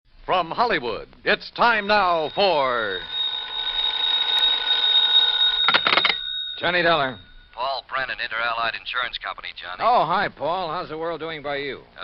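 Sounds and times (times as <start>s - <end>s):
telephone bell ringing: 1.6s - 7.8s.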